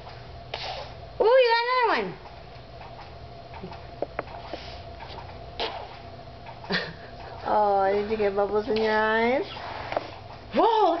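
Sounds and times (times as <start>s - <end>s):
faint steady hum: 0.0s - 11.0s
short breathy puff: 0.5s - 1.0s.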